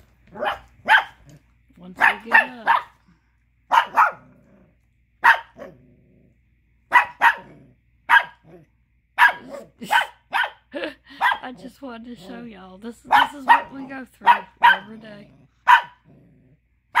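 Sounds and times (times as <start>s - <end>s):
puppy sharp barks: 0.3s - 1.3s, 2.0s - 3.0s, 3.7s - 4.3s, 5.2s - 5.8s, 6.9s - 8.5s, 9.2s - 11.5s, 13.1s - 15.0s, 15.6s - 16.0s.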